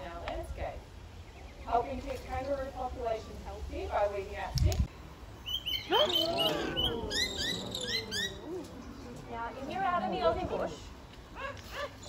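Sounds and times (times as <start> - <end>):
birds chirping: 1.0 - 3.2, 5.3 - 9.5.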